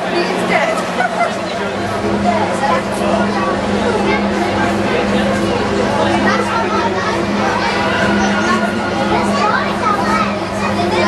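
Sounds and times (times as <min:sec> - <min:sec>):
children's voices: 0:00.0 - 0:11.0
crowd chatter: 0:00.0 - 0:11.0
steady low hum: 0:00.0 - 0:11.0.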